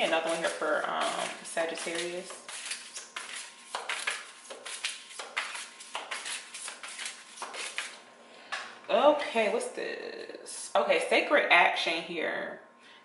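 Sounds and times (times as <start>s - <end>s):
cards being shuffled: 0.0s - 8.0s.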